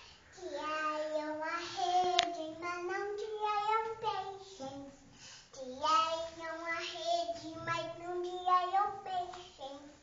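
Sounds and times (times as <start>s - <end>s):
girl singing: 0.3s - 10.0s.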